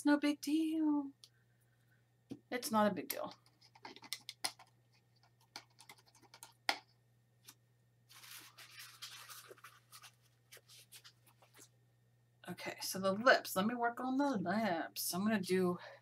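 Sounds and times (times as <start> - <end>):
scratchy rustling: 8.1 - 11.8.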